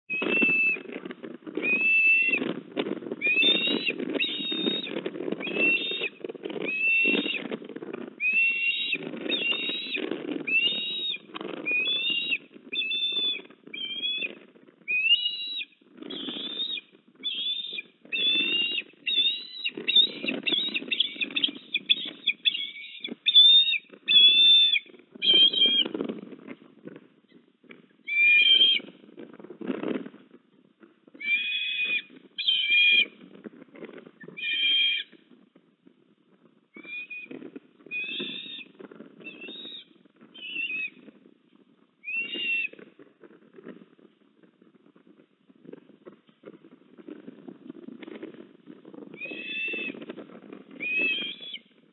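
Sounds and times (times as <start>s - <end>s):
ospreys chirping: 3.2s - 7.5s, 8.2s - 14.3s, 14.9s - 25.8s, 31.2s - 33.0s, 37.9s - 38.7s, 49.2s - 50.0s, 50.8s - 51.6s.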